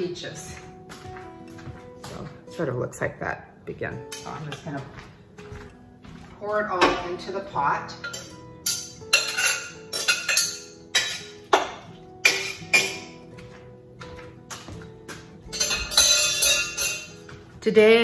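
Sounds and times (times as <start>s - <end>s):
background music with held notes: 0.0s - 18.0s
spoon clinking on bowl and pot: 8.0s - 13.5s, 15.5s - 17.4s.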